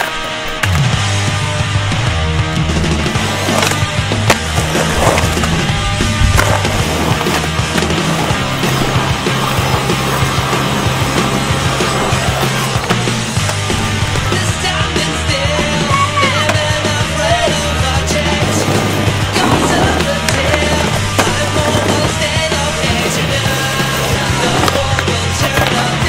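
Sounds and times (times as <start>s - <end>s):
rock music with bass line: 0.0s - 26.0s
skateboard wheels rolling on concrete: 0.0s - 26.0s
skateboard popping and landing: 2.7s - 26.0s.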